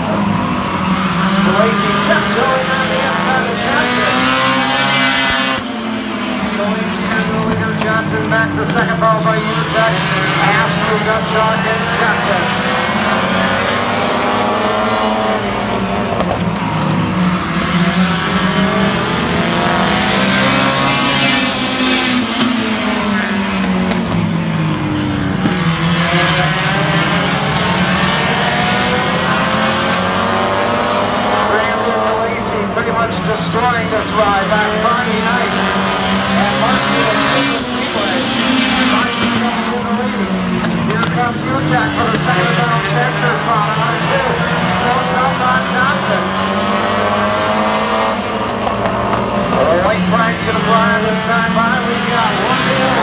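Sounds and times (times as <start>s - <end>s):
race car engines passing: 0.0s - 53.0s.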